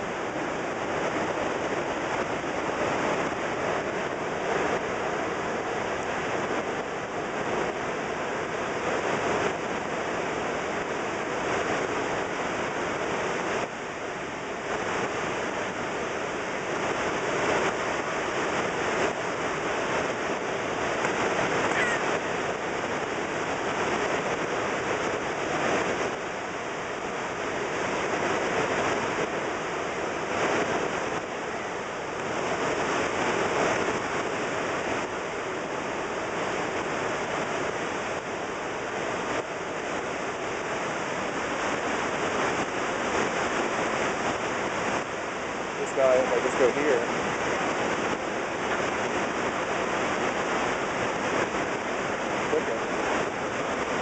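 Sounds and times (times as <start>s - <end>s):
roar of falling water: 19.0s - 26.1s.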